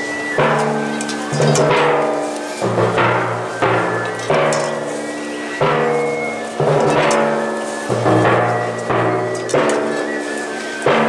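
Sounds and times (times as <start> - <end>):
drum strokes: 0.0 - 11.0.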